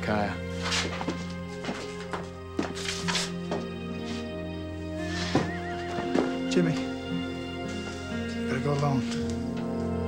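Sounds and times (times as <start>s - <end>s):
music underscore: 0.0s - 10.0s.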